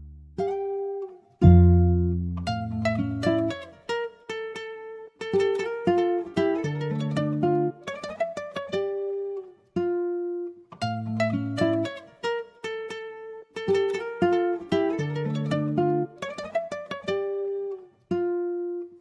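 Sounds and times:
plucked guitar: 0.0 - 19.0.

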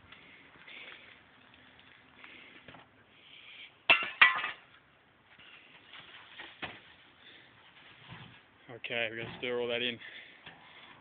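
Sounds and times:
knocks and scraping in manure: 5.3 - 11.0.

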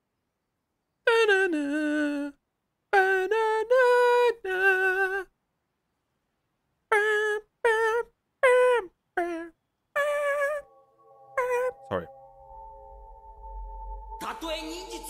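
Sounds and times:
high voice singing: 1.1 - 5.3, 6.9 - 12.1.

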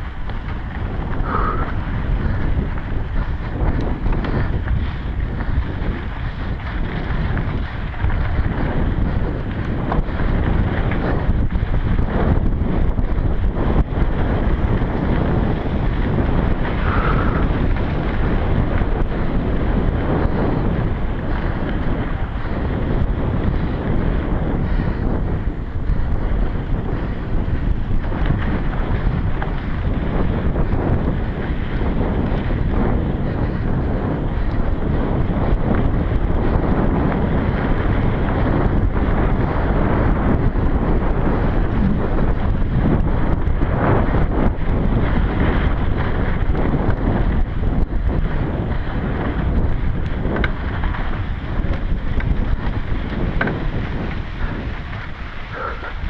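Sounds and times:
bike rattles: 0.0 - 56.0
bike rumble on dirt trail: 0.0 - 56.0
wind buffeting microphone: 0.0 - 56.0.

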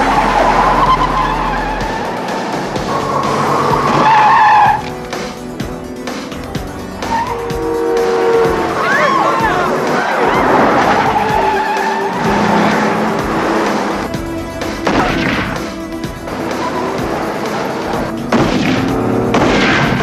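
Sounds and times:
cars speeding: 0.0 - 20.0
film score: 0.0 - 20.0
tyres squealing: 0.0 - 20.0.

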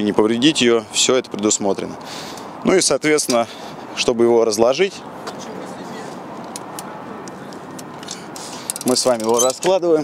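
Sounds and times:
urban background noise: 0.0 - 10.0
faint light clicks of bike: 2.0 - 2.5, 6.3 - 9.4.

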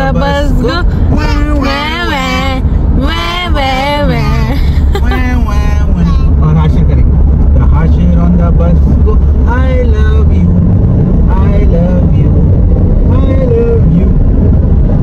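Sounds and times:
voices talking or singing: 0.0 - 6.5
car road and engine rumble: 0.0 - 15.0.

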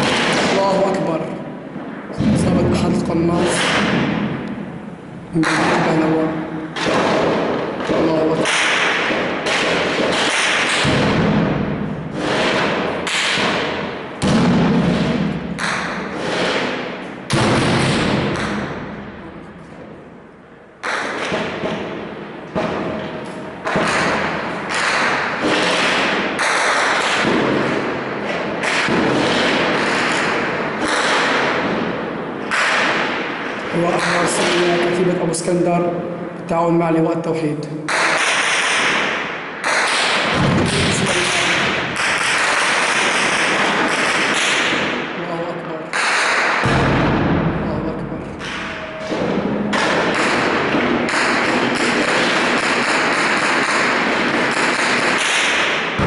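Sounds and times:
gunfire and blasts echoing: 0.0 - 56.0.

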